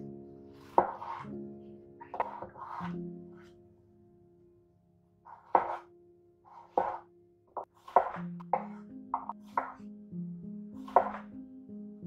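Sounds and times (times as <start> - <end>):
soft background music: 0.0 - 12.0
knife chopping on wooden board: 0.7 - 1.2, 5.4 - 5.8, 6.6 - 7.0, 7.6 - 8.8, 9.5 - 9.8, 10.8 - 11.2.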